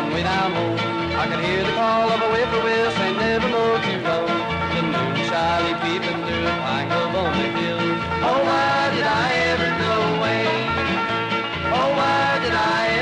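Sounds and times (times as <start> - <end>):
steady bass notes: 0.0 - 13.0
rhythm accompaniment: 4.2 - 9.2
sliding lead instrument: 4.5 - 6.2.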